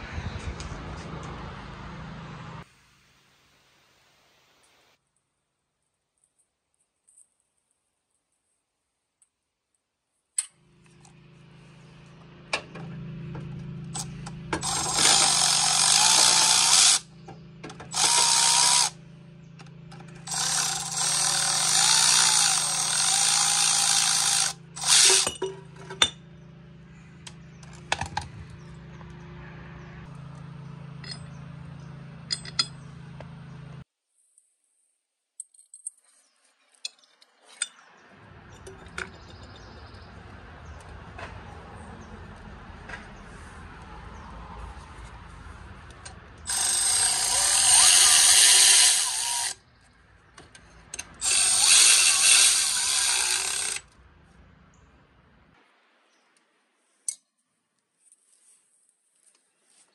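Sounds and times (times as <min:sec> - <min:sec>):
power drill driving bolts: 0:13.9 - 0:19.0, 0:19.6 - 0:26.2, 0:45.9 - 0:49.6, 0:50.3 - 0:54.0.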